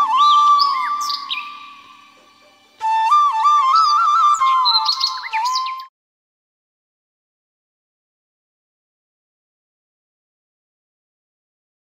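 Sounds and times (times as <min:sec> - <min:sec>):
bird chirps: 0:00.0 - 0:05.9
flute tune: 0:00.0 - 0:05.9.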